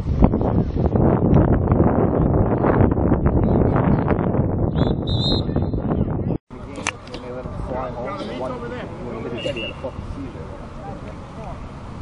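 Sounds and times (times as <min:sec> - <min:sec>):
wind buffeting microphone: 0:00.0 - 0:09.3.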